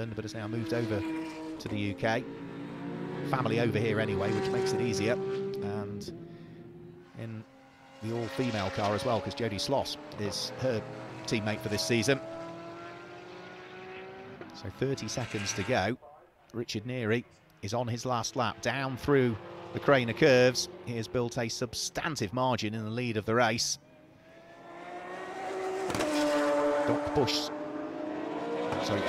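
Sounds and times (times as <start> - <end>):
race car engines droning: 0.0 - 29.0.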